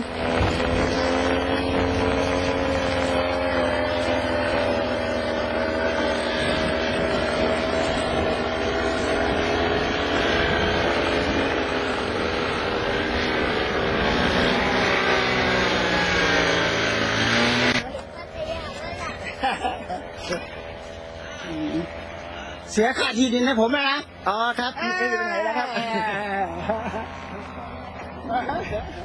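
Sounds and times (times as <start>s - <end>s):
wind noise: 0.0s - 19.4s
paramotor engine running: 0.0s - 29.0s.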